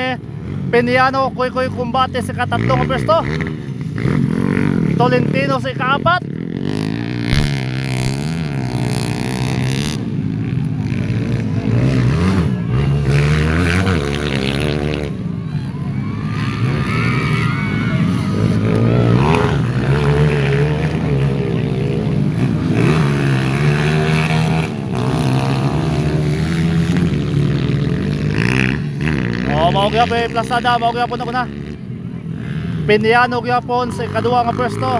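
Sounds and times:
motorcycle engines revving: 0:00.0 - 0:34.9.

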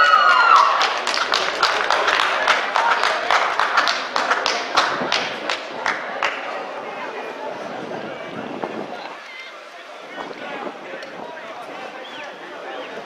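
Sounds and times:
loud celebratory shout: 0:00.0 - 0:01.1
scattered hand clapping: 0:00.2 - 0:06.7.

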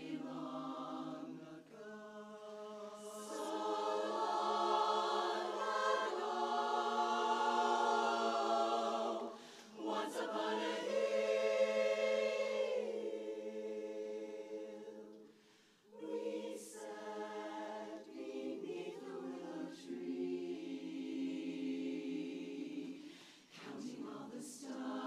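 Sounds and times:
women's chorus singing a cappella: 0:00.0 - 0:25.0.

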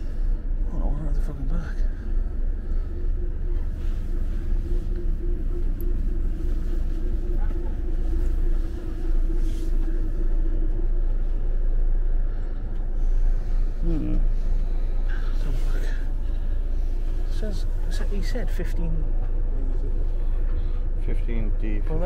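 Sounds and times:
steady hum: 0:00.0 - 0:22.0
coach engine idling: 0:01.2 - 0:17.9.

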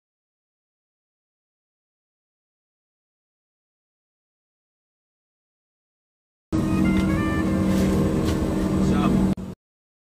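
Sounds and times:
jet cabin engine hum: 0:06.6 - 0:09.6.

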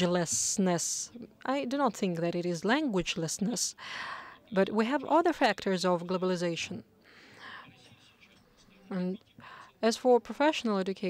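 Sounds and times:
faint whisper-like sound: 0:03.7 - 0:04.6, 0:06.9 - 0:09.8.

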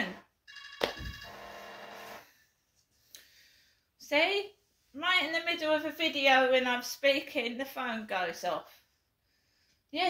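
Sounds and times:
phone ringtone high tones: 0:00.0 - 0:02.2.

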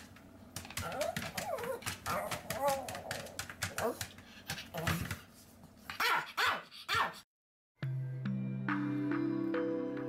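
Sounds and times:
dog barking: 0:06.0 - 0:07.2
music with sustained tones: 0:07.8 - 0:10.0.

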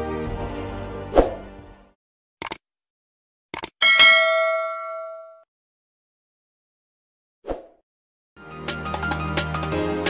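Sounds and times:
quick clicks: 0:02.4 - 0:02.6, 0:03.5 - 0:03.8
notification bell ding: 0:03.8 - 0:05.4.

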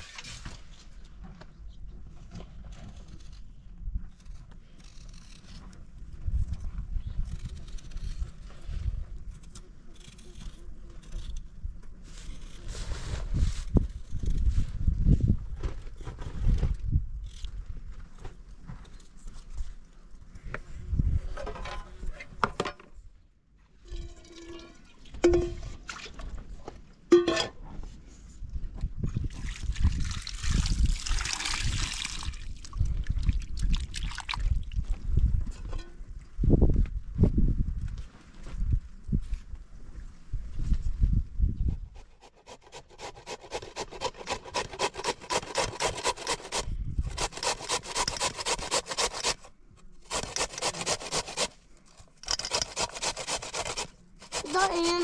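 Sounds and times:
potato grating on metal grater: 0:42.0 - 0:49.5, 0:50.1 - 0:51.6, 0:52.3 - 0:55.0.

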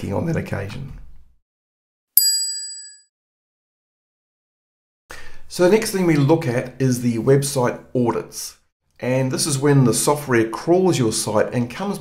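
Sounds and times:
bright ding: 0:02.2 - 0:03.1.

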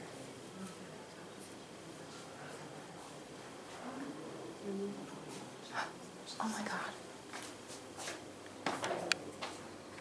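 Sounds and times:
whispered voices: 0:00.0 - 0:09.8.

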